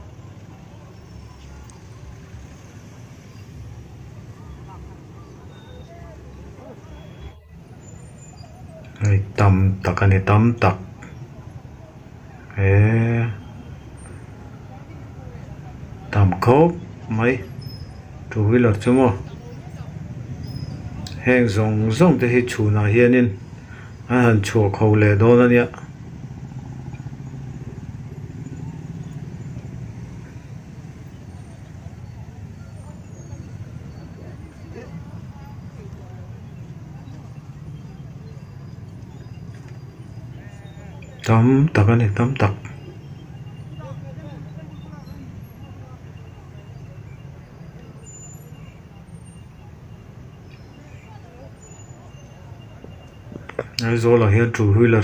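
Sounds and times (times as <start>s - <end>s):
crowd chatter: 0.0s - 55.0s
faint voices: 0.0s - 55.0s
motorbike and scooter engines: 0.0s - 55.0s
traffic rumble: 0.0s - 55.0s.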